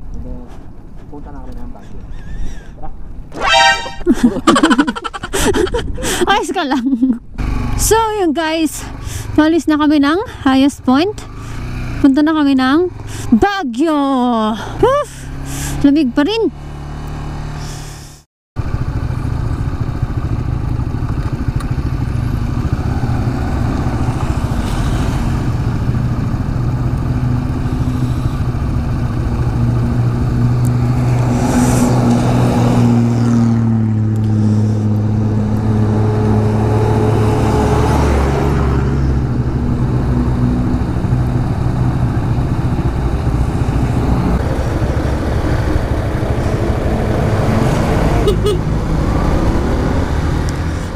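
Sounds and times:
wind and road noise: 0.0 - 50.9
trucks passing: 1.8 - 50.9
motorcycle engine running: 18.6 - 32.2, 39.1 - 50.9.

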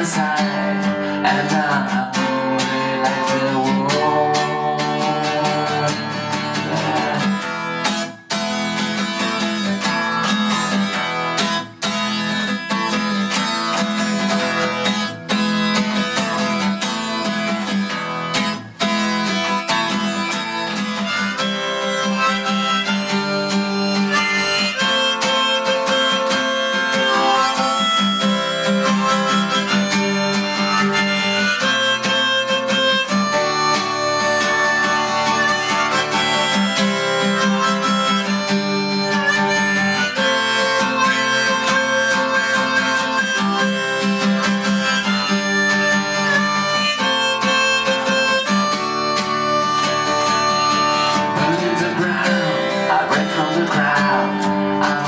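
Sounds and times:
acoustic guitar strumming: 0.0 - 55.0
harmonica solo: 0.0 - 55.0.

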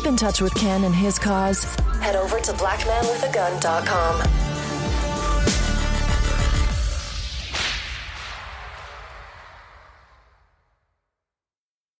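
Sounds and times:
sharp swishing sound effect: 6.7 - 10.5.

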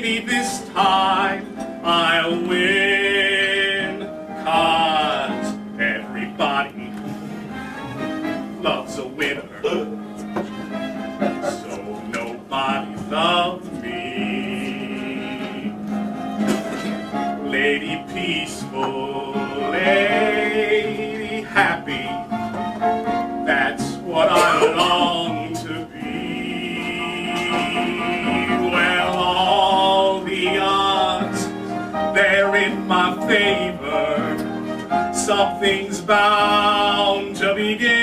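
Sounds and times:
instrumental accompaniment: 0.0 - 38.0.

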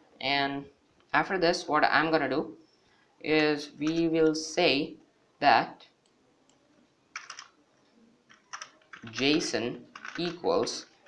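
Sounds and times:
keyboard typing: 6.5 - 7.6, 8.3 - 11.0.

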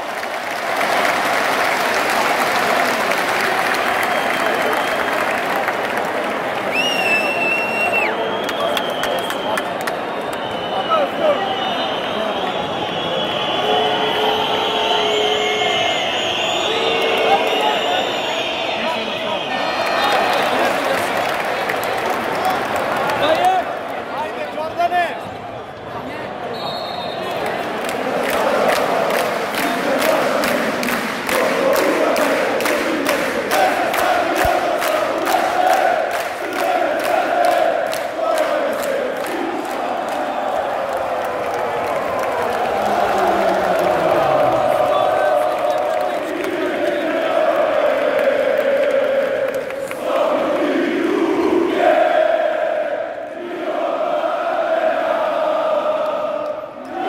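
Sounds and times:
rhythmic clapping: 0.0 - 6.9, 27.4 - 51.2
crowd chanting and singing: 27.2 - 57.0.

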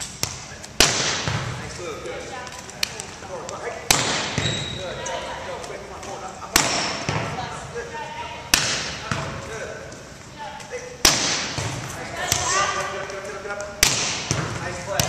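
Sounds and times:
volleyball slaps echoing in gym: 0.0 - 15.0.

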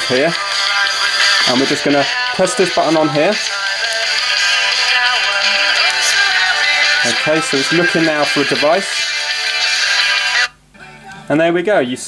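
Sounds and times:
music from phone speaker: 0.0 - 11.3.

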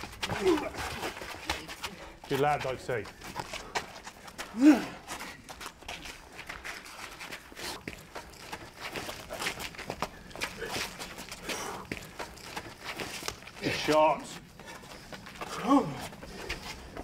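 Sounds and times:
feet scuffing on concrete: 0.0 - 17.0.

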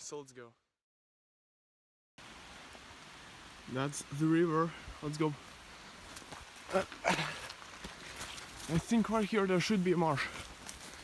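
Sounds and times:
leaves brushing: 5.1 - 11.0
footsteps through undergrowth: 5.3 - 11.0.

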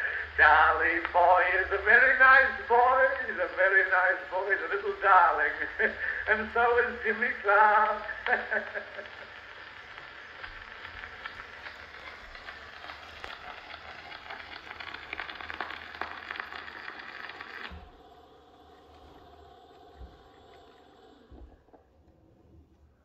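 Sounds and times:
phonograph surface crackle: 0.0 - 23.0.

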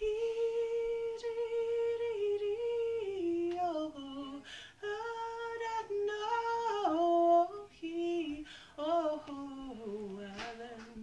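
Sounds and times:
woman singing unaccompanied: 0.0 - 11.0.

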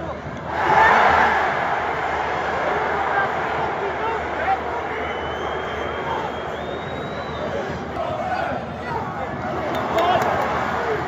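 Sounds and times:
stadium crowd voices: 0.0 - 11.0.

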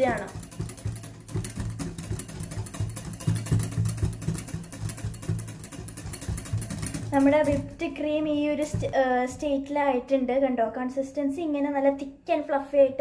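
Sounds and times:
wire whisk clicking in glass bowl: 0.0 - 7.8.

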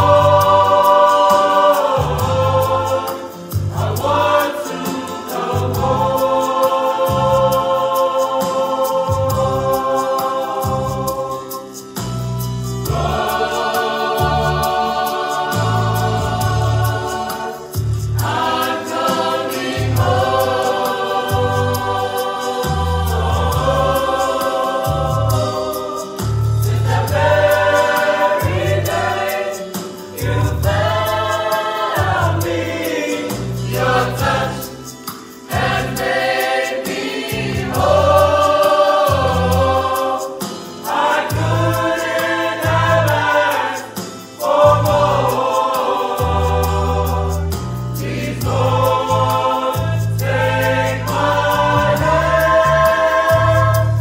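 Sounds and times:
choir singing gospel in harmony: 0.0 - 54.0.

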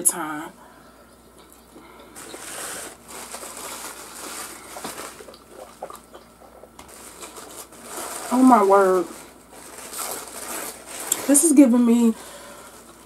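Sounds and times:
person chewing crispy food: 1.3 - 8.4, 9.2 - 11.3.

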